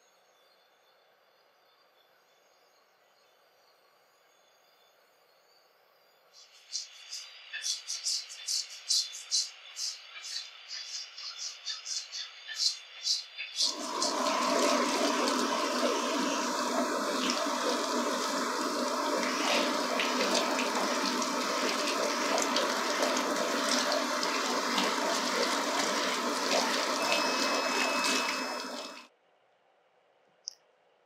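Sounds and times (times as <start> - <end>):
shower sprayer water rushing: 13.6 - 29.1.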